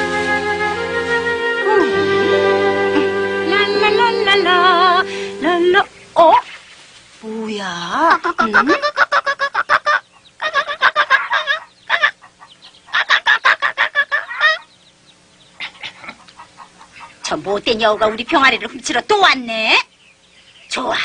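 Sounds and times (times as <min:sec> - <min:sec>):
chickens clucking: 0:08.0 - 0:21.0.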